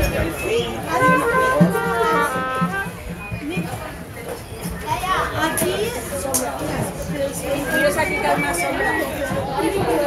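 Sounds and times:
children calling and talking: 0.0 - 10.0
crowd chatter: 0.0 - 10.0.

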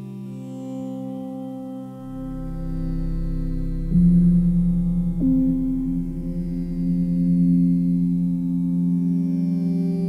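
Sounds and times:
soft sustained music chord: 0.0 - 10.0.

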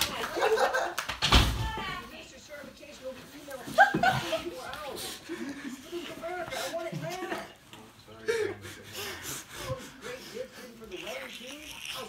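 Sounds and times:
faint voices: 1.7 - 12.0.

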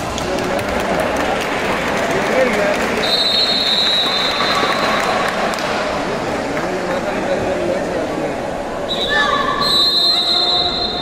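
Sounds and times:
crowd chatter: 0.0 - 11.0
referee's whistle blast: 8.9 - 11.0.

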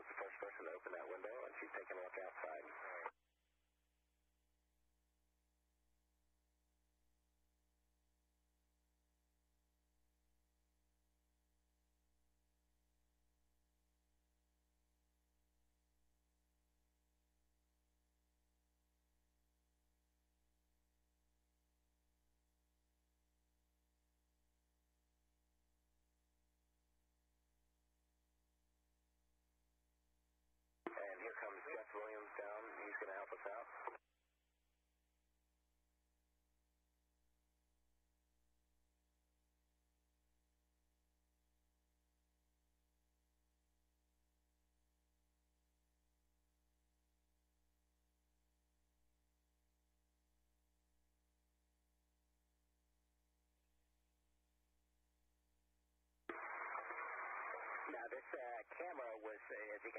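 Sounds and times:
voice over radio: 0.0 - 3.1, 30.9 - 34.0, 56.3 - 59.9.

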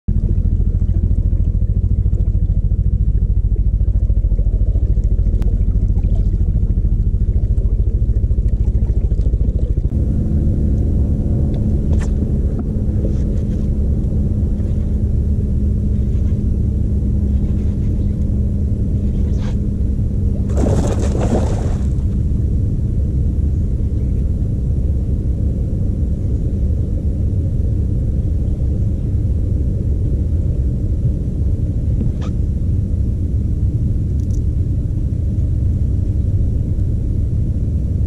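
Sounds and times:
electric trolling motor running: 0.1 - 34.3.

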